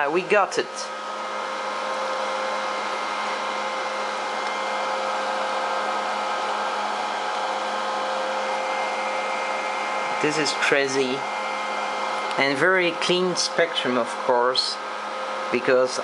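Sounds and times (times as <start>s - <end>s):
cooling fans whirring: 0.0s - 16.0s
hum and whine tones: 0.0s - 16.0s.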